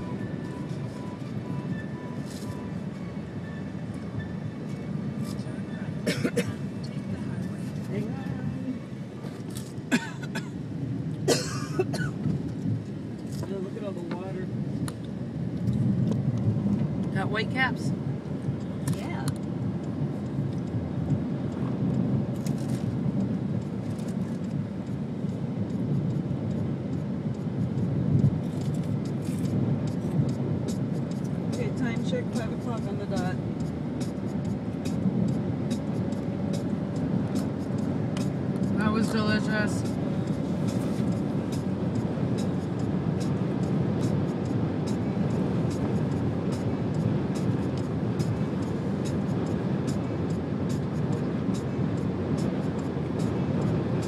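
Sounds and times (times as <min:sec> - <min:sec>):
car road and engine rumble: 0:00.0 - 0:54.0.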